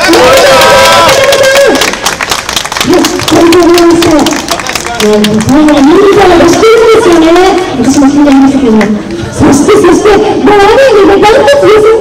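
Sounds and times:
crowd applause: 0:00.0 - 0:05.9.

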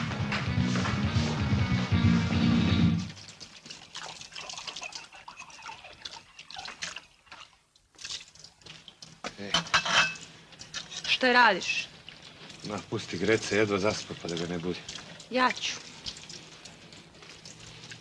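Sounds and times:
water drips and splashes: 0:03.0 - 0:18.0
water trickling from a tap: 0:03.0 - 0:18.0.

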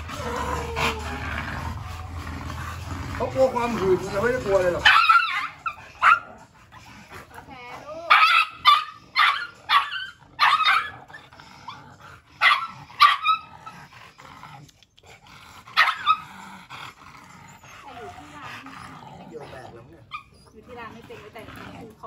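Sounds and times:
small dog yapping: 0:04.8 - 0:06.3, 0:08.1 - 0:11.2, 0:12.4 - 0:13.5, 0:15.8 - 0:16.2.

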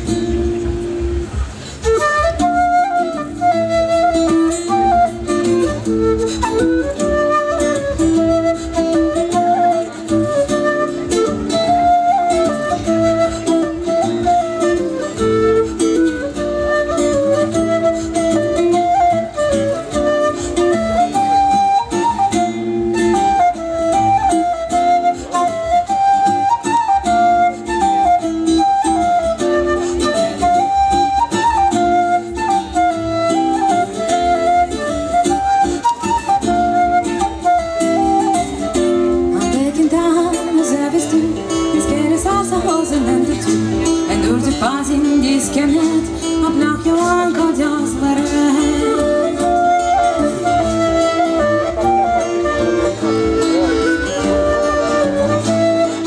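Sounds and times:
acoustic guitar: 0:00.0 - 0:56.0
flute melody: 0:00.0 - 0:56.0.

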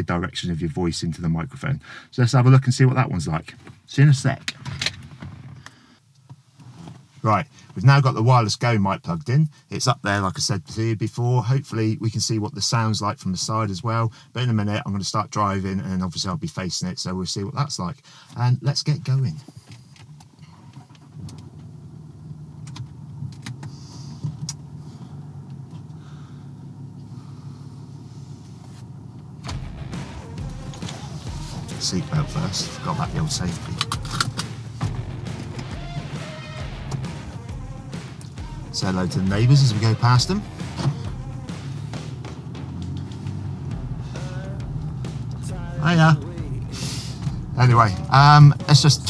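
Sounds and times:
man speaking: 0:00.0 - 0:04.4, 0:30.8 - 0:34.1, 0:38.6 - 0:40.5, 0:44.0 - 0:44.6, 0:45.4 - 0:49.0
car engine idling: 0:20.0 - 0:49.0
deep rumble: 0:26.8 - 0:49.0
sharp clicks: 0:33.6 - 0:35.7.

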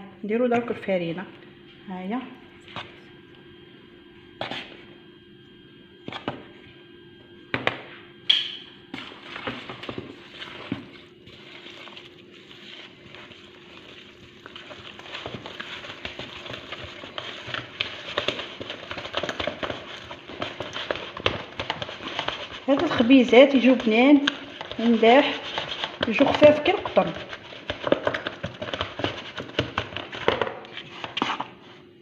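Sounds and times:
faint steady hum: 0:00.0 - 0:32.0
spoon stirring dough: 0:04.4 - 0:05.0, 0:08.9 - 0:31.6.

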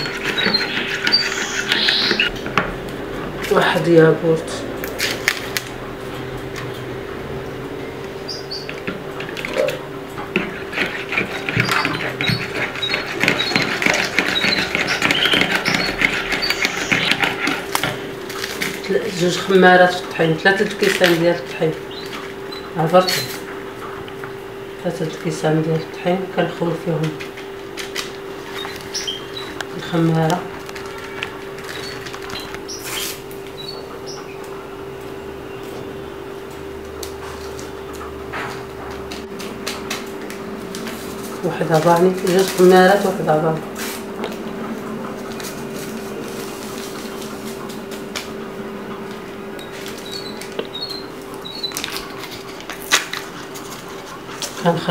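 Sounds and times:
steady hum: 0:00.0 - 0:54.9
wire whisk beating batter: 0:10.2 - 0:18.0.

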